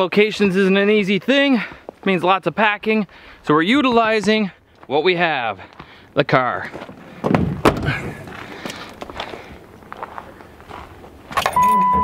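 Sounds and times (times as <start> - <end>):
car keys jangling: 11.3 - 12.0
electronic warning chime beeping: 11.5 - 12.0.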